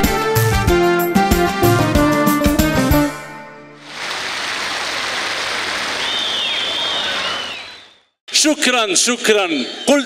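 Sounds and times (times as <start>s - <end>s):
audience applauding: 3.9s - 7.8s
high whistles: 5.9s - 8.2s.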